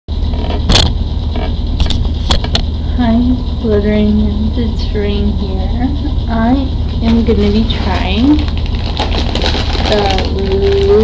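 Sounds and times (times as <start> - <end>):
steady low rumble: 0.1 - 11.0.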